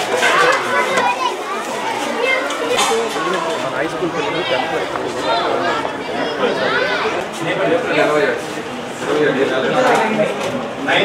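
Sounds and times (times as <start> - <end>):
adults talking: 0.0 - 11.0
children chattering and calling out: 0.0 - 11.0.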